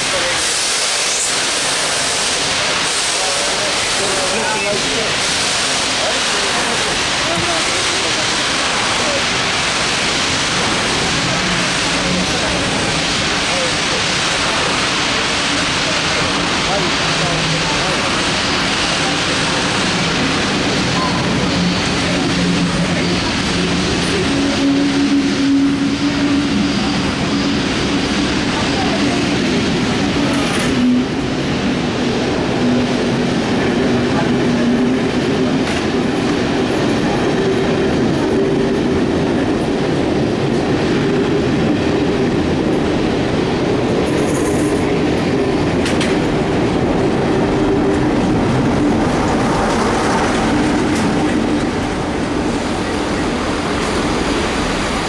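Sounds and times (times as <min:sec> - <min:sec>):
diesel locomotive engine running: 0:00.0 - 0:55.0
train wheels clicking over rail joints: 0:43.9 - 0:52.0.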